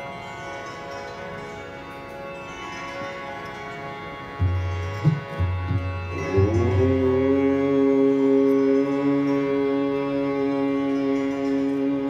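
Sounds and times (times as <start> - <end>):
harmonium drone: 0.0 - 12.0
plucked strings: 1.8 - 12.0
tabla bass strokes: 4.4 - 9.5.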